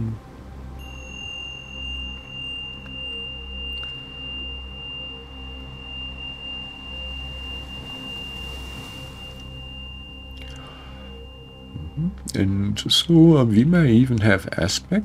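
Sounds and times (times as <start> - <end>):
high pure tone: 0.0 - 14.4
low drone: 0.0 - 15.0
soft hiss: 0.0 - 15.0.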